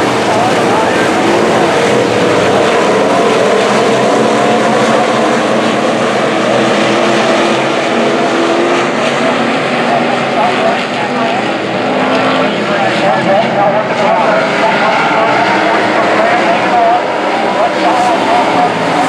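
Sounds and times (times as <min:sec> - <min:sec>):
race car engines droning: 0:00.0 - 0:19.0.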